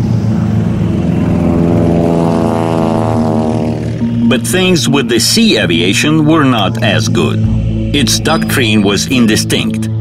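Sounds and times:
propeller aircraft engine drone: 0.0 - 10.0.

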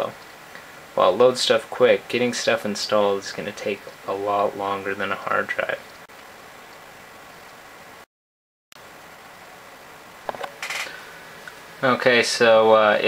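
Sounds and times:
low hiss of room noise: 0.0 - 8.1, 8.8 - 13.0.

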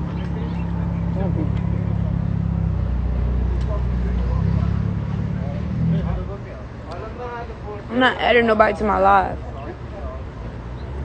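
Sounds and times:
faint voices: 0.0 - 11.0
vehicle engine running: 0.0 - 11.0.

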